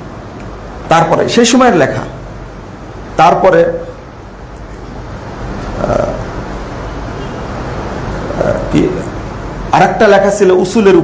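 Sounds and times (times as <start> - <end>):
low even hum: 0.0 - 11.0.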